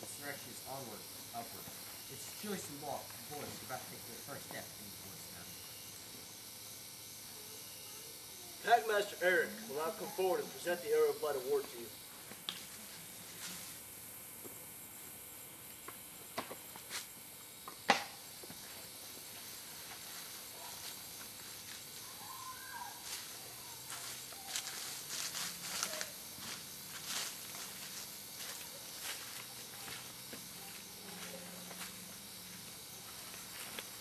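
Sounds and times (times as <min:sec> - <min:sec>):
steady hiss: 0:00.0 - 0:34.0
footsteps on open ground: 0:23.0 - 0:34.0.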